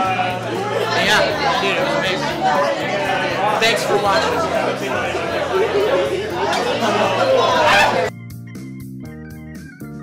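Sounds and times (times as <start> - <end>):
people chattering: 0.0 - 8.1.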